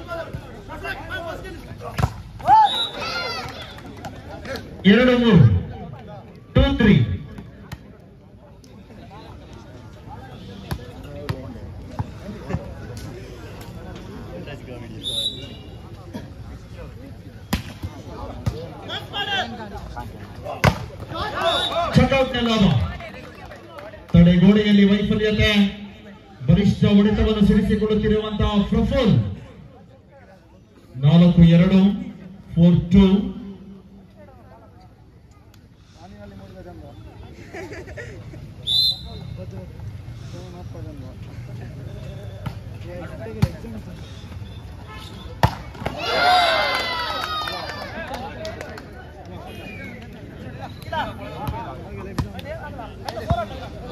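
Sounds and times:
crowd cheering and shouting: 2.4s - 4.0s, 45.8s - 48.2s.

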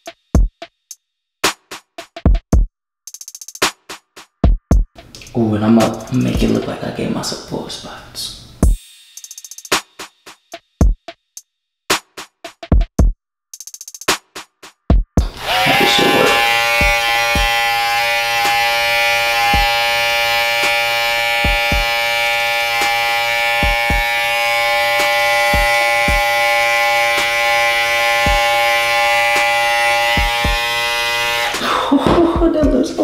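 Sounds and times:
background music with drum beat: 0.0s - 6.6s, 8.6s - 15.4s, 16.3s - 17.5s, 19.5s - 19.7s, 21.4s - 21.9s, 23.6s - 24.1s, 25.0s - 26.3s, 28.2s - 28.5s, 30.2s - 30.7s, 31.5s - 33.0s
electric hair trimmer buzzing: 15.2s - 32.2s.

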